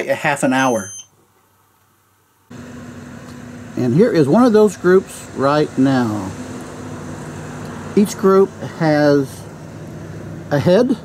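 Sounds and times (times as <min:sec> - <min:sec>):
pickup truck driving up: 0:02.5 - 0:11.0.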